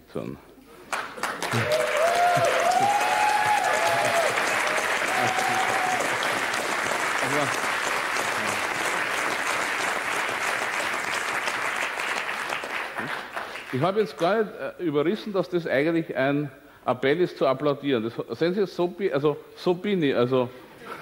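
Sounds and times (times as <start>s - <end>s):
audience applauding: 0.9s - 14.2s.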